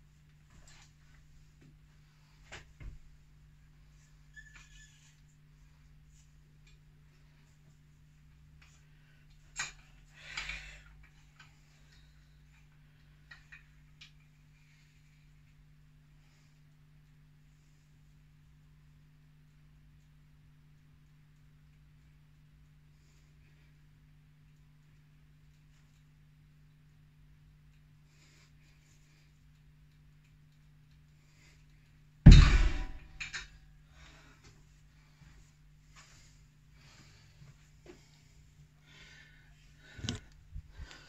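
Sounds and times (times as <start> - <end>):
low steady hum: 0.0 - 41.0
faint light ticks: 19.4 - 32.0.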